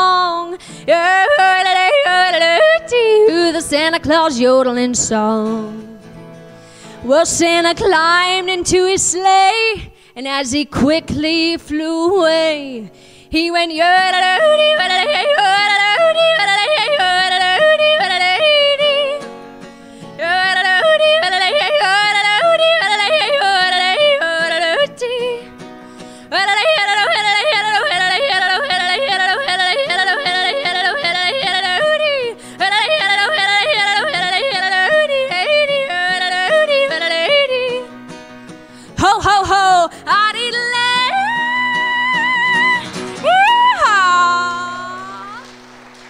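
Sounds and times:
woman yodeling: 0:00.0 - 0:03.6, 0:13.5 - 0:19.2, 0:20.2 - 0:25.4, 0:26.4 - 0:37.8, 0:39.0 - 0:45.5
strummed acoustic guitar: 0:00.0 - 0:09.2, 0:13.9 - 0:46.0.

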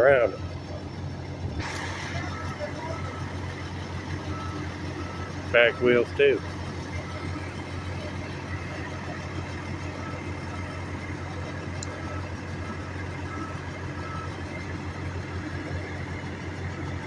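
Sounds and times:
diesel engine idling: 0:00.0 - 0:17.0.

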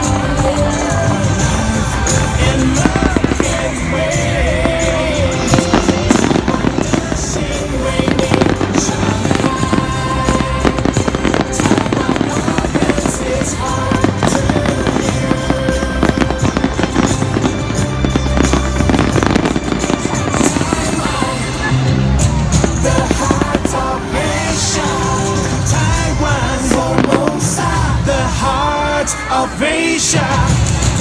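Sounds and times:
fireworks bangs and crackles: 0:00.0 - 0:28.8
music playing: 0:00.0 - 0:31.0.

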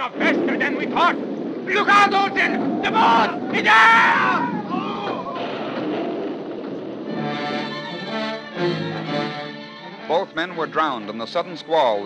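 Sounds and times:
storm rushing noise: 0:00.0 - 0:11.8
dramatic orchestral music: 0:07.0 - 0:12.0.

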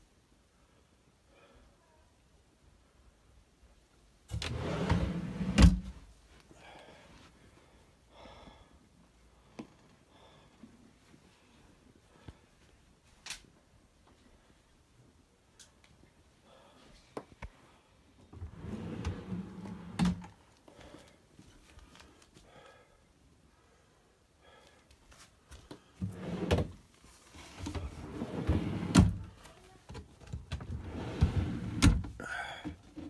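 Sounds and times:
drawer runner sliding: 0:04.3 - 0:05.9, 0:18.4 - 0:20.3, 0:26.0 - 0:29.2, 0:30.6 - 0:32.0.

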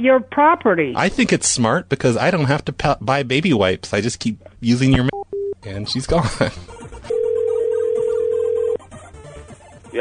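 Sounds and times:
telephone ringback tone: 0:07.1 - 0:08.8.

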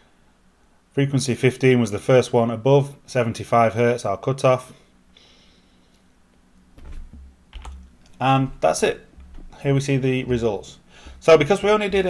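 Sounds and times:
soft low thump: 0:06.8 - 0:07.7, 0:09.2 - 0:12.0
computer keyboard clicks: 0:07.5 - 0:07.9.

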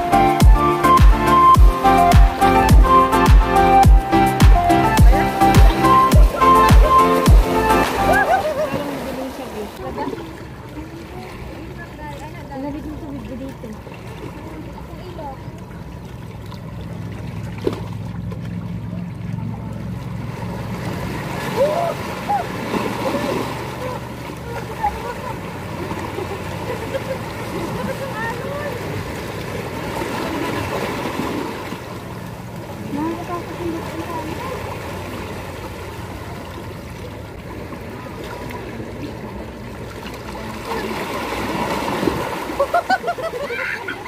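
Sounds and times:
indistinct voices talking: 0:00.0 - 0:09.9
water lapping around rocks: 0:05.2 - 0:44.0.

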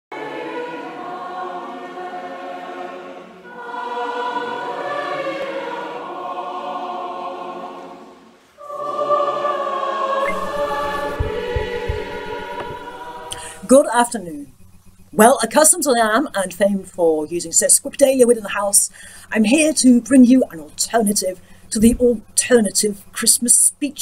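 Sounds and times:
choir singing held chords: 0:00.1 - 0:15.1
soft knocks: 0:10.3 - 0:12.9
low rumble: 0:10.3 - 0:13.4.

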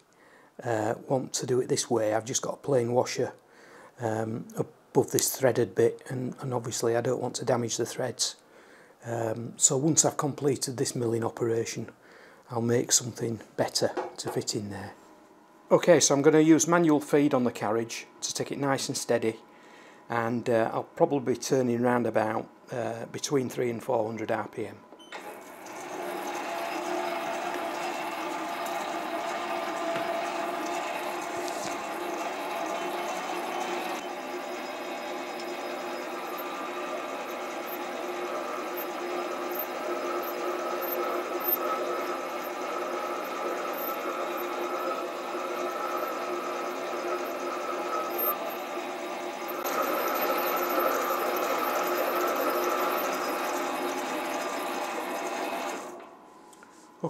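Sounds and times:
lathe motor and cutting: 0:25.2 - 0:56.1.

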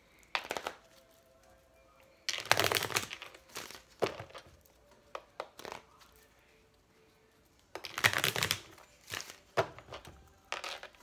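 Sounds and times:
cards being shuffled: 0:00.2 - 0:01.1, 0:02.3 - 0:06.2, 0:07.8 - 0:11.0.

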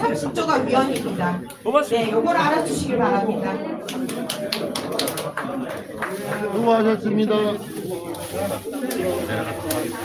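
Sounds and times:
background voices: 0:00.0 - 0:10.0
people clapping sparsely: 0:03.8 - 0:06.8.

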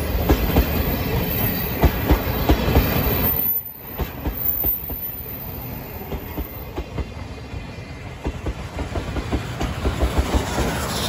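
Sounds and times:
train wheels clacking over rail joints: 0:00.0 - 0:05.1, 0:08.1 - 0:11.0
low train rumble: 0:00.0 - 0:11.0.

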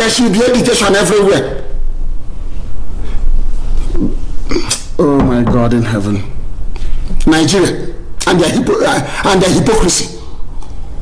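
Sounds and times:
steady low hum: 0:00.0 - 0:11.0
man's throat grunt: 0:03.9 - 0:04.9
man speaking: 0:05.0 - 0:06.4.

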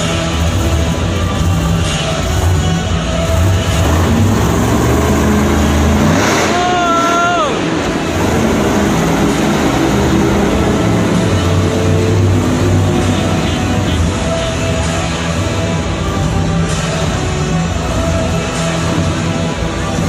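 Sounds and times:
monster truck engine revving: 0:00.0 - 0:20.0.

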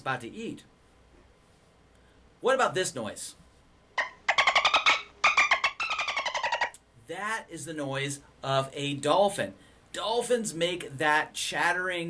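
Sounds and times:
dolphin chattering: 0:04.0 - 0:06.7.

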